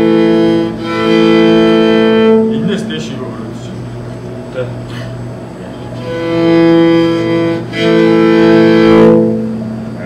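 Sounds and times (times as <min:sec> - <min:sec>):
bowed fiddle note: 0:00.0 - 0:03.0, 0:05.9 - 0:10.0.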